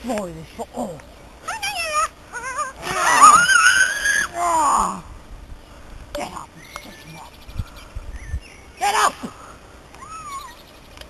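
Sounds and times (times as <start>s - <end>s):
person screaming: 2.4s - 5.0s.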